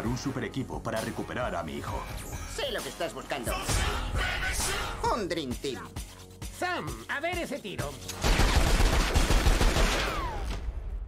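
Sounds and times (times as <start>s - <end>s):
cartoon gunfire volley: 8.2s - 10.7s.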